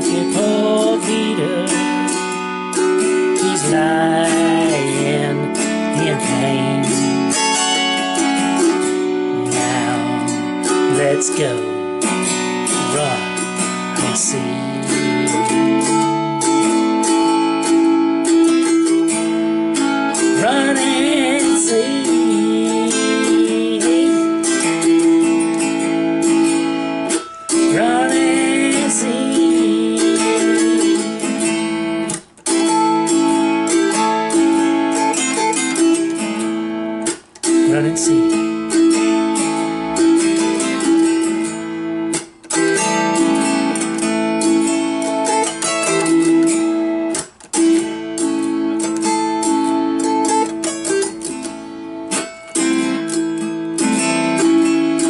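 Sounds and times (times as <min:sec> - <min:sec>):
autoharp strummed chords: 0:00.0 - 0:55.0.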